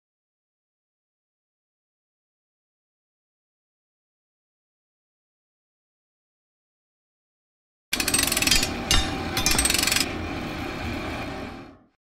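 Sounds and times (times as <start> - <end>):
rapid mechanical rattling: 8.0 - 10.2.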